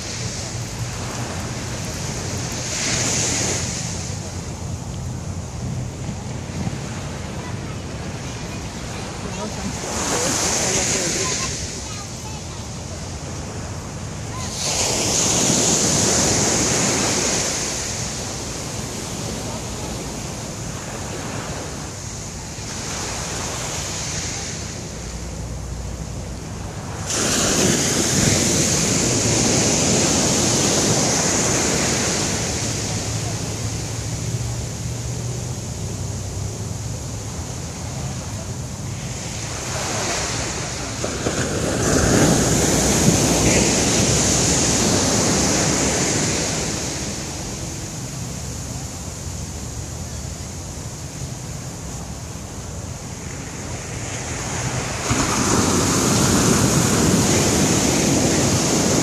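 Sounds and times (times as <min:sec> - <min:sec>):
water washing up shore: 0:00.0 - 0:59.0
waves crashing on beach: 0:00.0 - 0:59.0.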